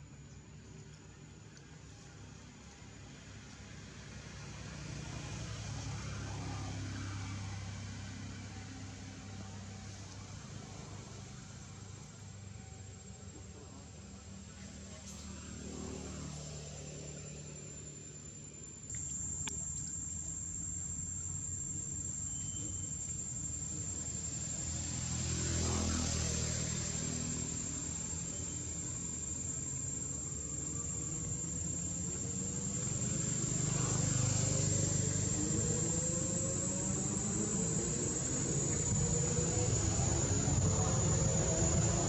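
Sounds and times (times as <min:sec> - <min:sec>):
high insect drone: 0:04.6 - 0:42.0
vehicles passing: 0:19.0 - 0:42.0.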